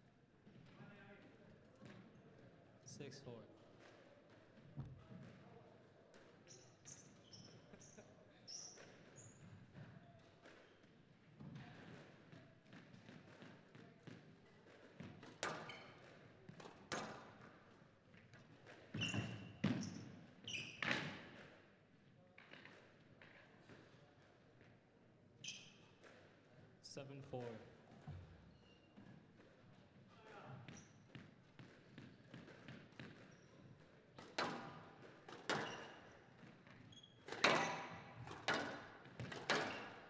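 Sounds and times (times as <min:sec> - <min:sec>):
squash ball knocks: 0:12.7 - 0:17.5, 0:31.1 - 0:40.0.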